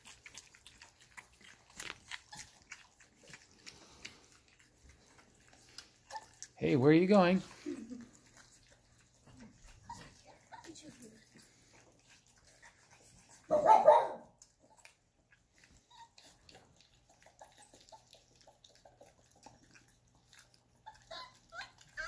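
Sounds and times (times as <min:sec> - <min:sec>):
puppies eating from metal bowls: 0:00.0 - 0:22.0
dog barking: 0:13.5 - 0:14.3.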